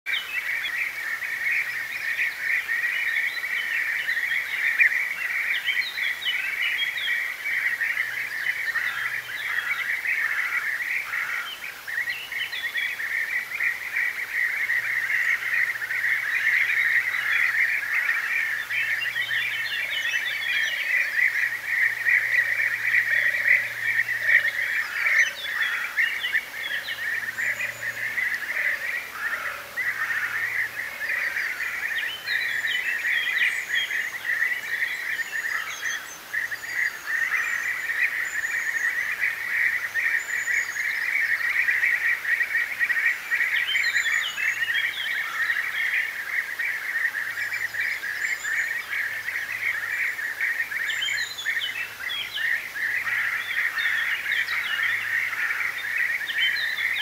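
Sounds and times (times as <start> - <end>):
bee-eaters rolling calls: 0.2 - 57.0.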